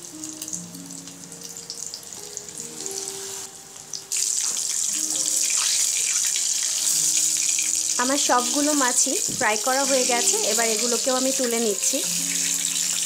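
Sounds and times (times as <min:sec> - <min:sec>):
background music: 0:00.0 - 0:13.0
fish sizzling in hot oil: 0:00.0 - 0:13.0.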